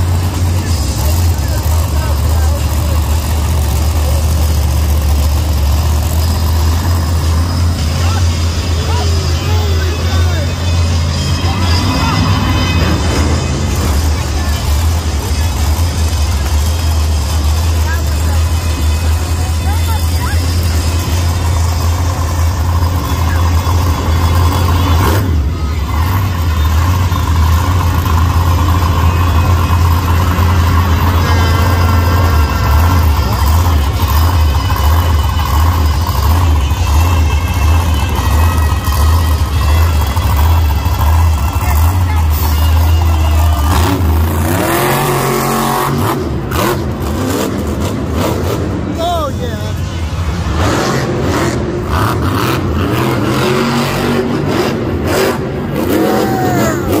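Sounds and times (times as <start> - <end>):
monster truck engine revving: 0.0 - 57.0
announcer over loudspeakers: 7.6 - 15.6, 28.6 - 45.9.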